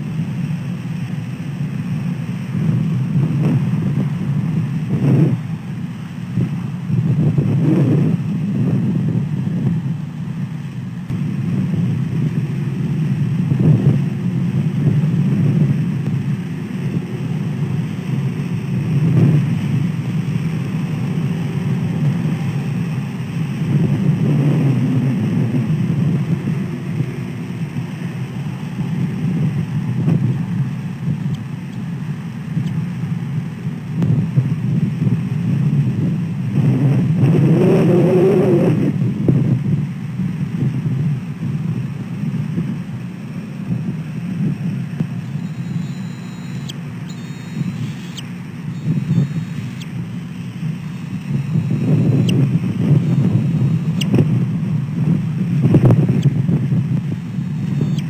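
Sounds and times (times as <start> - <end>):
road traffic: 0.0 - 58.0
wind buffeting microphone: 0.0 - 58.0.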